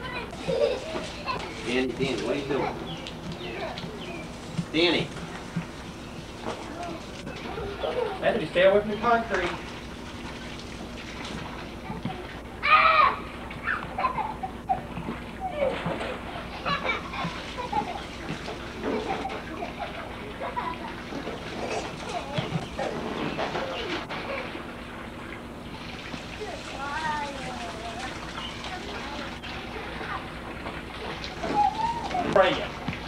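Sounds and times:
children chattering and squealing: 0.0 - 4.6, 6.4 - 8.4, 11.8 - 24.7, 26.3 - 32.8
hose water splashing into pool: 0.0 - 33.0
child shouting: 12.6 - 13.8, 31.4 - 32.3.

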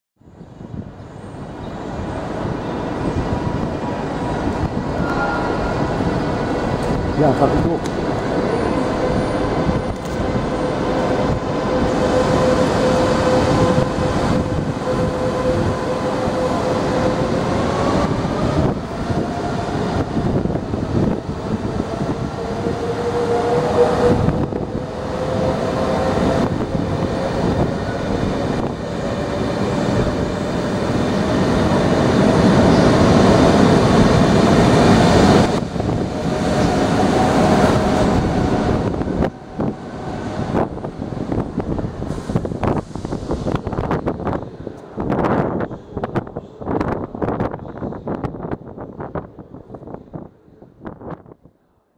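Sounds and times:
train wheels rumbling on rails: 0.5 - 51.4.

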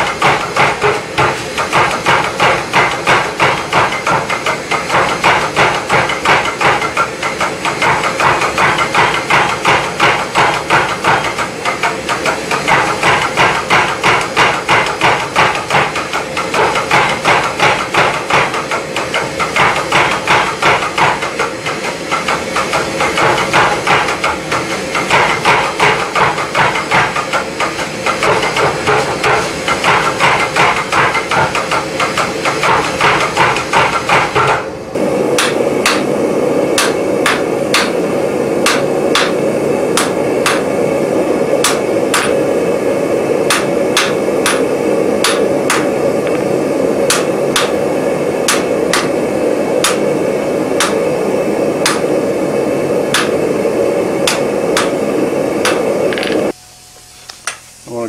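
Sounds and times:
power hammer pounding hot steel: 0.0 - 56.6.

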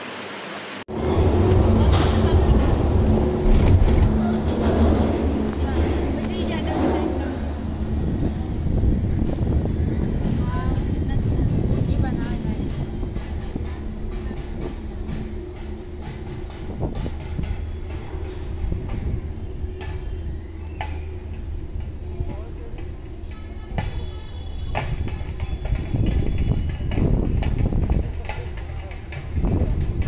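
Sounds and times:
cable car rumbling and rattling: 0.9 - 30.0.

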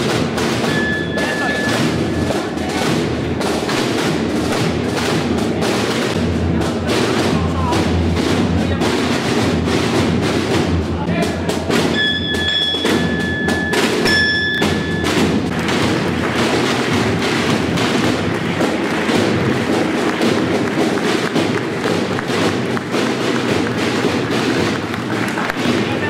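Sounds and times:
drumbeats: 0.0 - 26.0
crowd applauding: 14.2 - 26.0.

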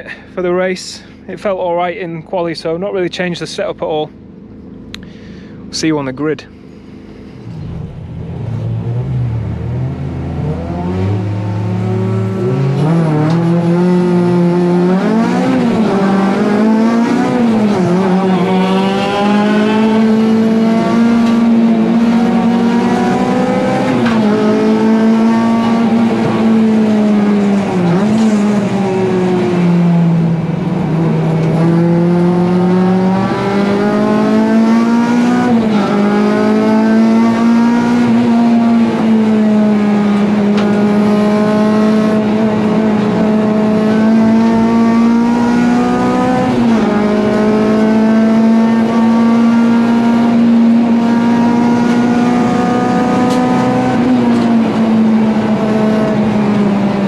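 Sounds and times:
race car engine revving: 6.8 - 57.0.

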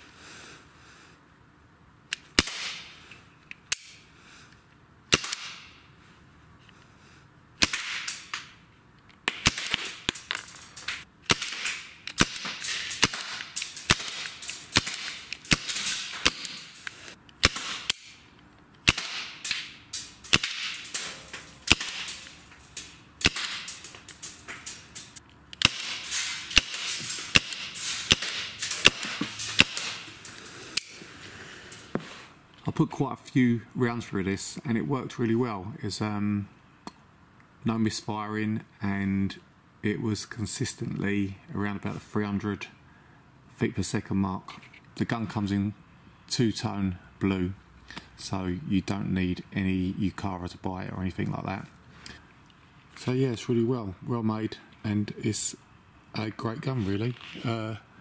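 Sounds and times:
airsoft revolver firing: 2.4 - 2.9, 5.1 - 5.7, 7.6 - 8.5, 9.3 - 18.2, 18.8 - 24.0, 25.6 - 30.1.

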